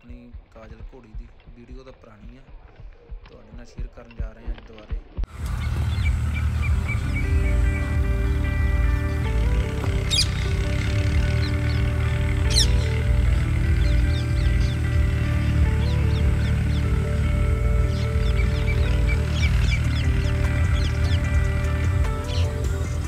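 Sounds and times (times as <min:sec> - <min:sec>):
birds chirping: 0:05.1 - 0:23.0
music of long held notes: 0:05.3 - 0:23.0.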